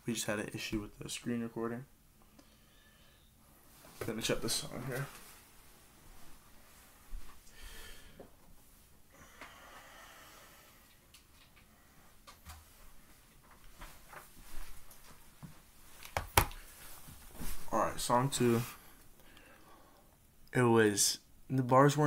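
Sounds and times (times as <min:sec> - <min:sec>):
faint handling noises: 0:03.6 - 0:07.5.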